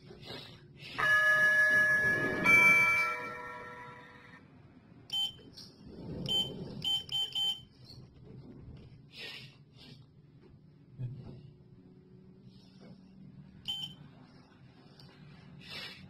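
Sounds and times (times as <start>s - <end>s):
elevator two-note arrival chime: 1.0s - 4.4s
short electronic beeps: 13.7s - 14.0s.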